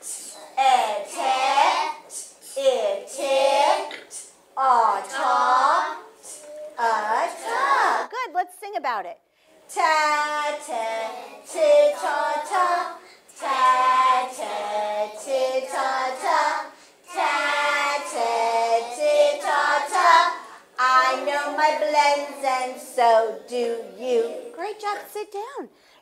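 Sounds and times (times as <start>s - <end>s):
children chanting syllables: 0.0s - 8.1s, 9.8s - 24.5s.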